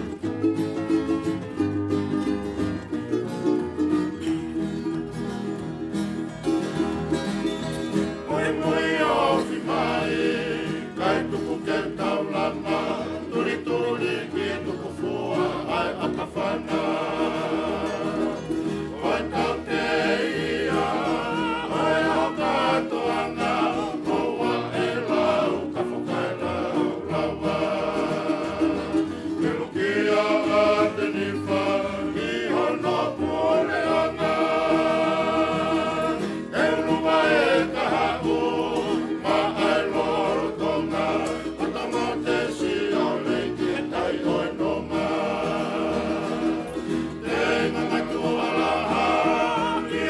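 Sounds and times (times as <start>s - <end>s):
choir singing in harmony: 7.9s - 50.0s.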